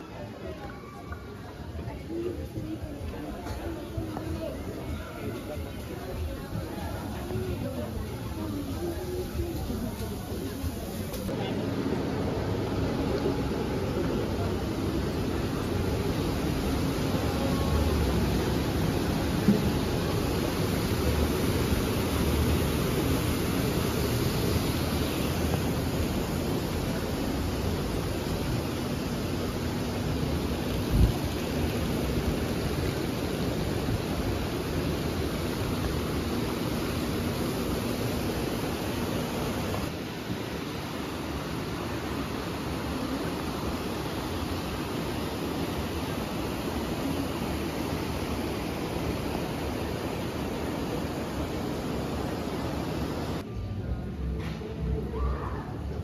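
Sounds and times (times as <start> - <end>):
river rushing over rocks: 12.6 - 53.4.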